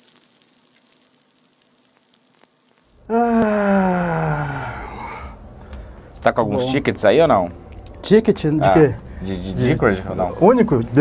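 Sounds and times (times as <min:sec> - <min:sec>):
faint crackling hiss: 0:00.0 - 0:06.2
man's drawn-out exclamation: 0:03.0 - 0:05.4.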